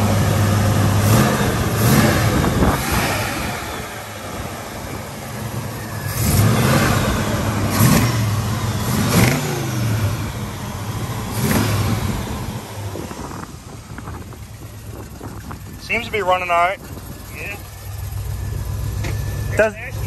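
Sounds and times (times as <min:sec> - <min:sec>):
car engine idling and revving: 0:00.0 - 0:20.0
person talking: 0:19.5 - 0:20.0.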